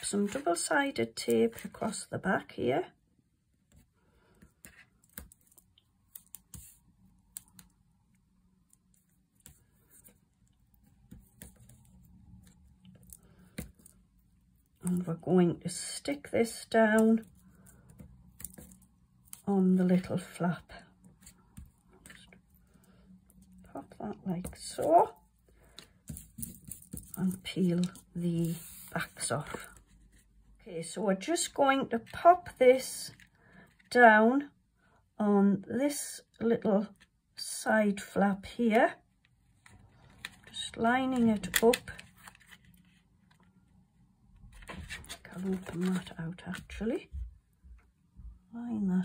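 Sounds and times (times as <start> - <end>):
tape and paper crackling: 4.5 - 15.1, 39.6 - 43.5, 44.4 - 46.8.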